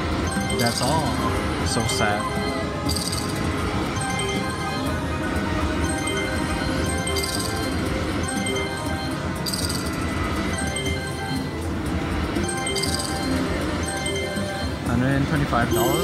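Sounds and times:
slot machine bonus music: 0.0s - 16.0s.

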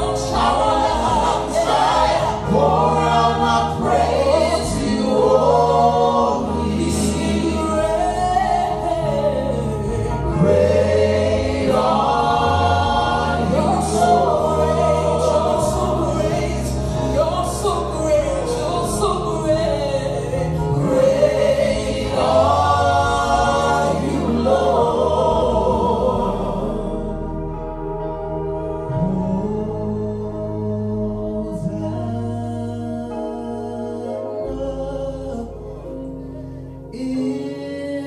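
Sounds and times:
group singing gospel song: 0.0s - 27.7s
sustained keyboard chords: 0.0s - 38.0s.

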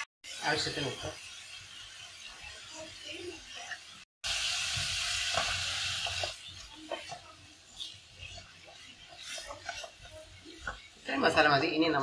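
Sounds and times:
vegetables sizzling in hot oil: 0.0s - 12.0s
wooden spatula stirring vegetables: 4.7s - 12.0s.

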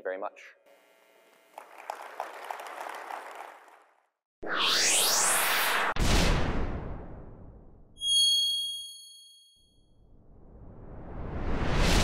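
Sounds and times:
whoosh: 4.4s - 7.8s, 10.1s - 12.0s.

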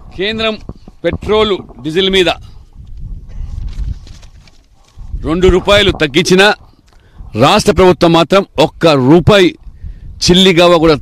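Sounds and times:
soft irregular thumps: 0.2s - 7.1s.

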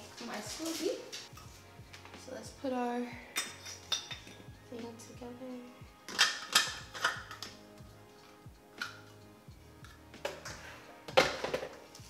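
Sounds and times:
glass and plastic clinking: 3.3s - 4.5s, 6.1s - 7.6s.

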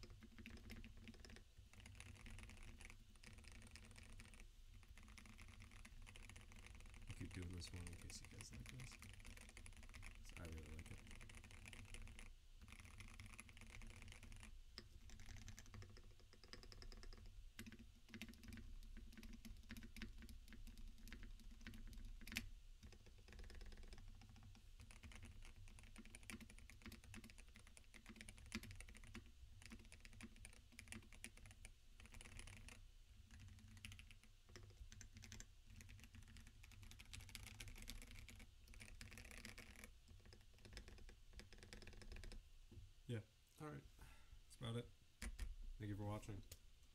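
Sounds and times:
fast typing on mechanical keyboard: 0.0s - 42.4s.

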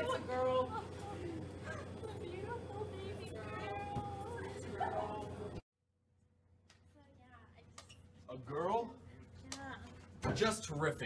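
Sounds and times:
steady hum: 0.0s - 5.6s.

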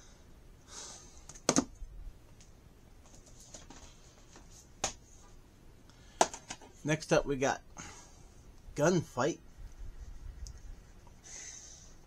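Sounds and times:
faint handling noise: 2.3s - 6.8s.

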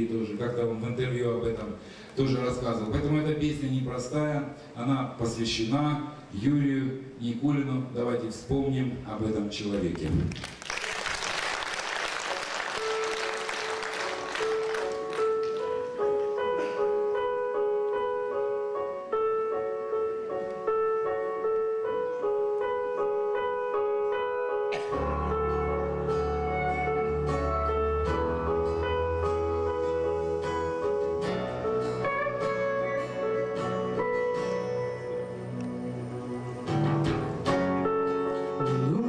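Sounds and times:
keyboard playing slow melody: 12.3s - 39.0s
live band music: 12.7s - 39.0s.

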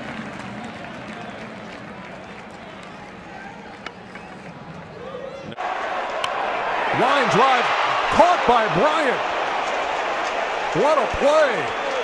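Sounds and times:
ballpark crowd noise: 0.0s - 12.0s.

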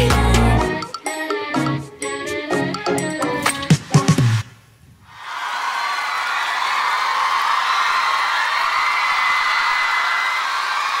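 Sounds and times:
audience cheering: 5.1s - 11.0s.

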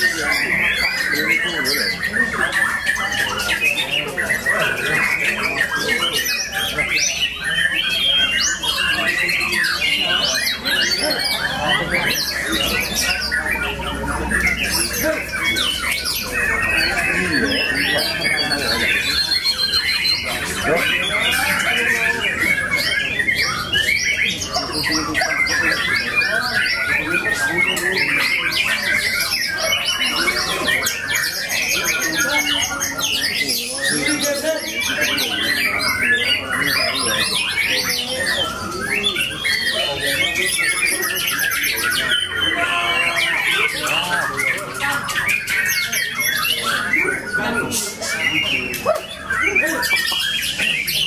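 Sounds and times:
songbirds whistling and trilling: 0.0s - 51.0s.

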